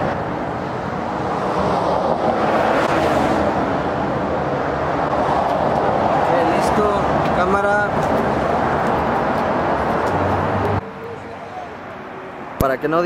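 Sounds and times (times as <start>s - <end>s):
vehicle passing: 0.0s - 12.6s
road traffic: 0.0s - 13.0s.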